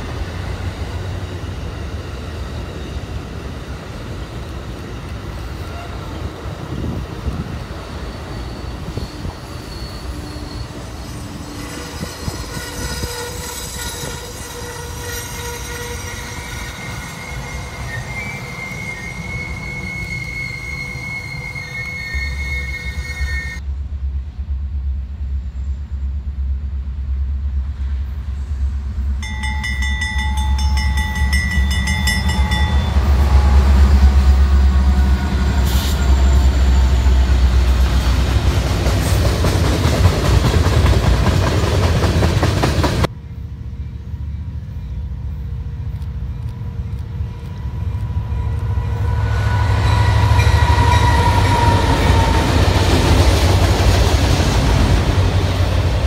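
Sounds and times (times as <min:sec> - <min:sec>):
diesel locomotive engine rumble: 0:00.0 - 0:56.0
train horn: 0:05.6 - 0:06.3, 0:10.0 - 0:23.6, 0:31.8 - 0:37.4, 0:47.6 - 0:52.8
train wheel squeal: 0:06.8 - 0:23.6, 0:28.3 - 0:39.5, 0:41.6 - 0:54.6.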